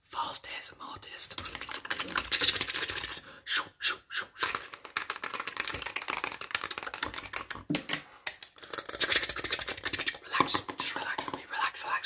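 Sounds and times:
fast close-up whispering: 0.1 - 4.4, 10.0 - 12.0
rapid clicking and tapping: 1.3 - 3.2, 4.4 - 11.4.

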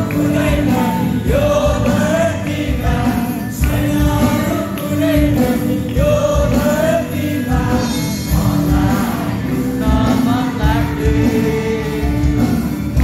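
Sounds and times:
band accompaniment: 0.0 - 13.0
group singing worship song: 0.0 - 13.0.

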